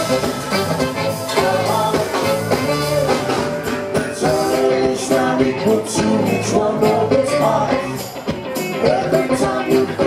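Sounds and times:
live funk band playing: 0.0s - 10.0s.

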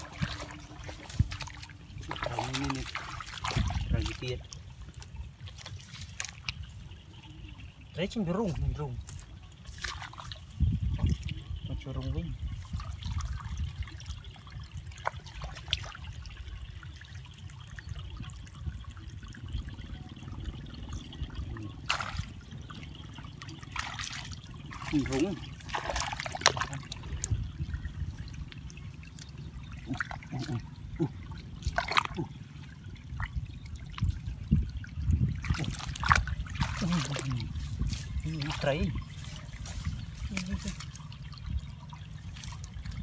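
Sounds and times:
hands splashing in muddy water: 0.0s - 6.8s, 9.0s - 11.4s, 21.7s - 32.5s, 35.3s - 43.0s
steady low rumble: 0.0s - 43.0s.

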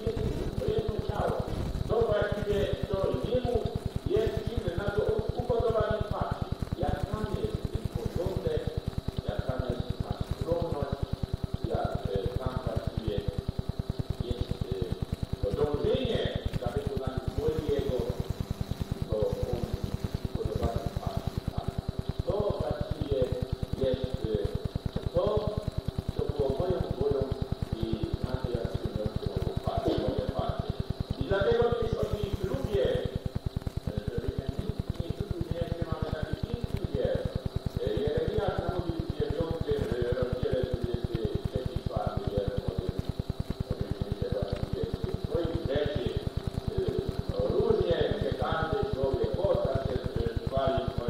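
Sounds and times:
faint high whine: 0.0s - 51.0s
fast low ticking: 0.0s - 51.0s
speech on old tape recording: 0.0s - 51.0s.

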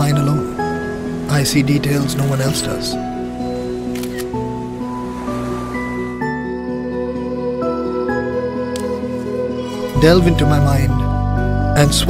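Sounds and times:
soft background music: 0.0s - 12.0s
camera shutter double click: 3.9s - 4.3s.

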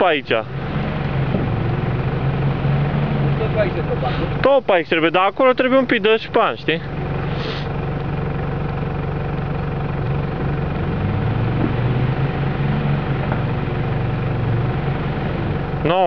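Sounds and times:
off-road vehicle engine running: 0.0s - 16.0s.

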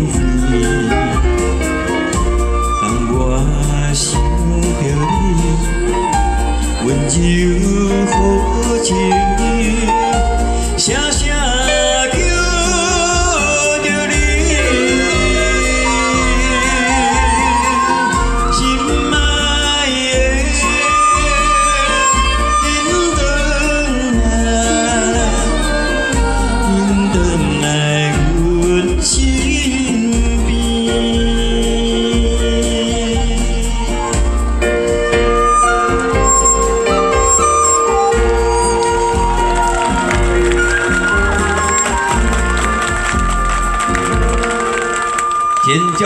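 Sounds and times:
low bass beat: 0.0s - 44.7s
keyboard accompaniment: 0.0s - 46.0s
live band music: 0.0s - 46.0s
violin long held notes: 13.5s - 28.8s, 33.8s - 46.0s
bass pulses: 30.2s - 44.9s.

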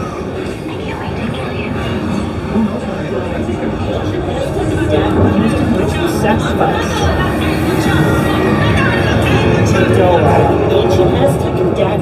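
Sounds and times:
steady low rumble: 1.6s - 12.0s
loud music with voices: 6.1s - 12.0s.

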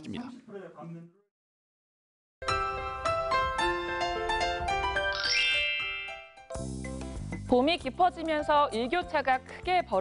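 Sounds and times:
tv jingle with sparkling chime: 5.0s - 7.0s
low background music: 6.1s - 10.0s.

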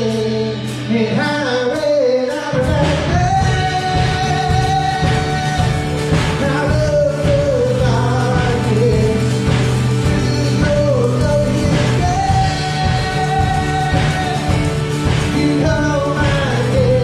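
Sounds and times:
band accompaniment: 0.0s - 17.0s
man singing lead: 0.0s - 17.0s
strummed acoustic guitar: 0.0s - 17.0s.

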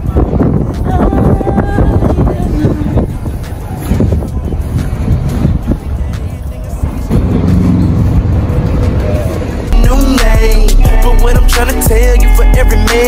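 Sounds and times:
song with heavy bass line: 0.0s - 13.0s
traffic rumble: 0.0s - 13.0s.

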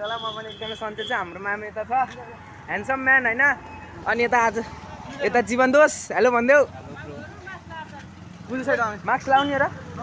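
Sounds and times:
street traffic: 0.0s - 10.0s.

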